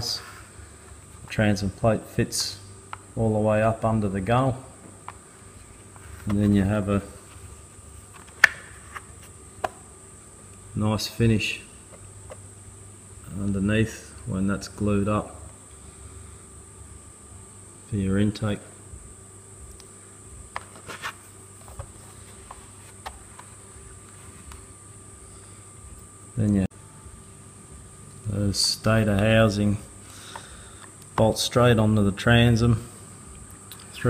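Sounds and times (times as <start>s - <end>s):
faint high-pitched whine: 0.0s - 34.0s
steady high-pitched hiss: 0.0s - 34.0s.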